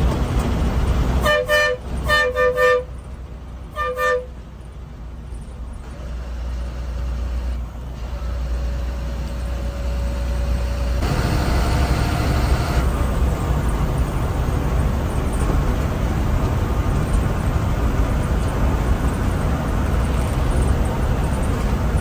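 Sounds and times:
bus engine drone: 0.0s - 22.0s
road noise: 0.0s - 22.0s
bus horn two-note toots: 1.2s - 3.0s, 3.7s - 4.4s.

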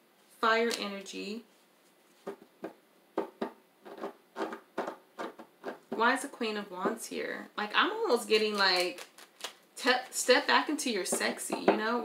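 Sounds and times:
cards being shuffled: 8.2s - 10.4s.

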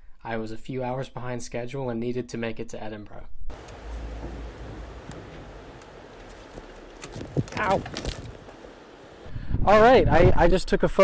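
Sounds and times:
wind buffeting microphone: 3.5s - 10.4s.

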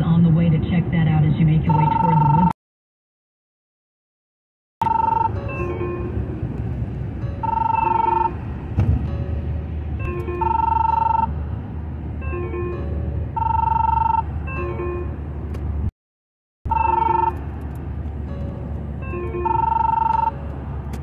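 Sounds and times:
car road rumble: 0.0s - 2.5s, 4.8s - 15.9s, 16.7s - 21.0s
phone ringtone melody: 1.7s - 2.6s, 4.8s - 6.3s, 7.2s - 8.5s, 9.1s - 11.4s, 12.2s - 15.2s, 16.7s - 17.4s, 18.3s - 20.8s.

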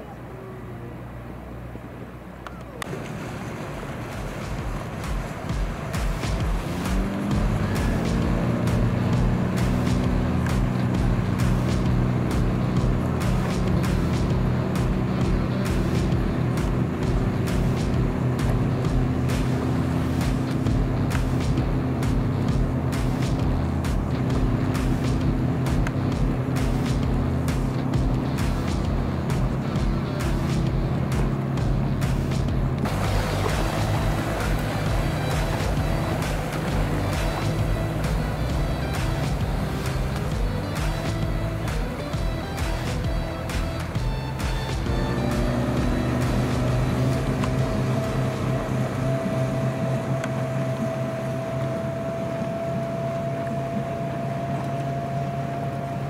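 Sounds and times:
outboard boat motor running: 0.0s - 56.0s.

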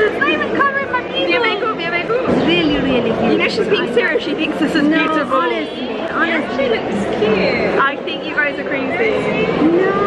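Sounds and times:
background chatter: 0.0s - 10.0s
women talking close: 0.0s - 10.0s.

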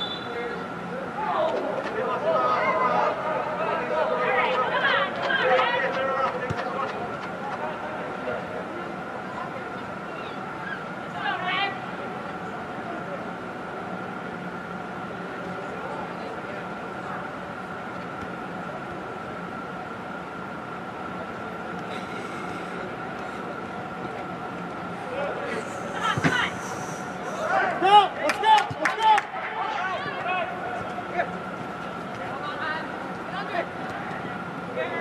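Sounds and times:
players shouting: 0.0s - 7.1s, 25.0s - 35.0s
steady hum: 0.0s - 35.0s.

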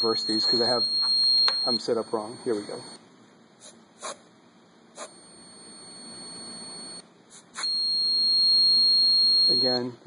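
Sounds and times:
high-pitched buzzer beep: 0.0s - 2.9s, 7.6s - 9.9s.

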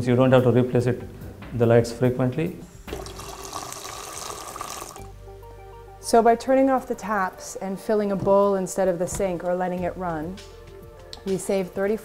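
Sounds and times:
soft background music: 0.0s - 12.0s
tap water running into sink: 2.8s - 5.1s.

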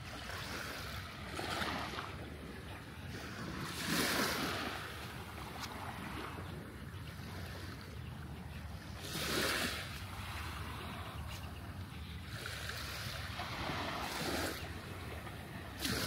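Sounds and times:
small waves lapping on sand: 0.0s - 16.0s.

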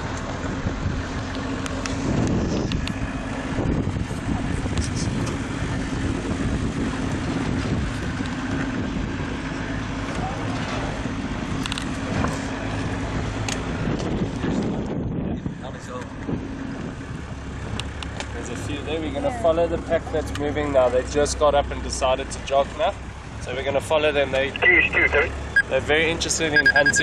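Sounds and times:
vehicle engine running: 0.0s - 27.0s
wind: 0.0s - 27.0s.

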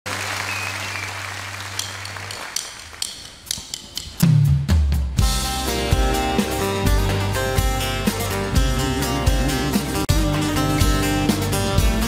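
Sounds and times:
audience applauding: 0.0s - 3.3s.

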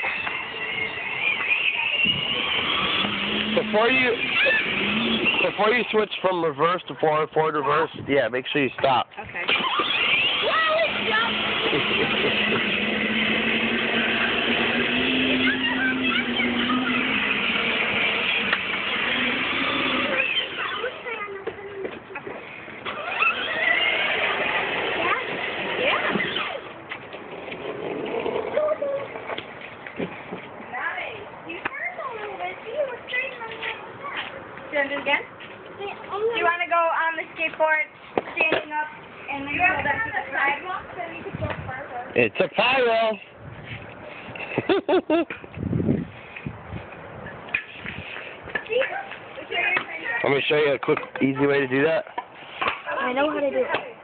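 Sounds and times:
children chattering: 0.0s - 5.9s, 9.3s - 29.4s, 30.6s - 41.4s, 48.6s - 50.3s
plastic wheels rattling on concrete: 0.0s - 6.2s, 9.4s - 35.2s, 47.5s - 54.0s
electric motor whine: 0.1s - 5.8s, 9.6s - 20.7s.

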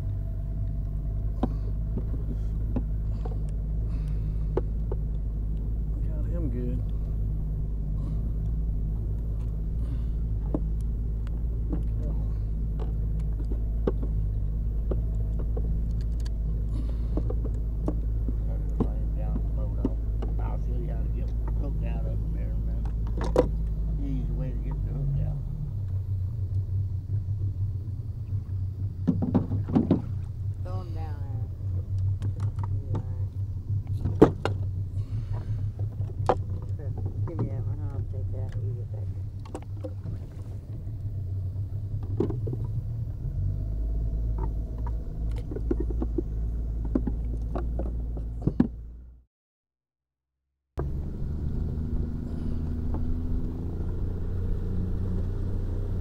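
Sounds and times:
jugs and gear clattering in boat: 0.0s - 49.1s
boat motor running: 0.0s - 49.2s, 50.8s - 56.0s.

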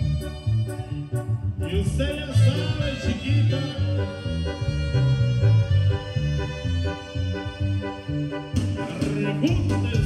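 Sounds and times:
live dance music: 0.0s - 10.0s.

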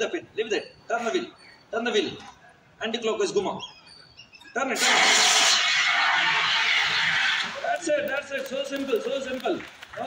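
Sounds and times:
fire extinguisher hissing: 4.8s - 7.5s.

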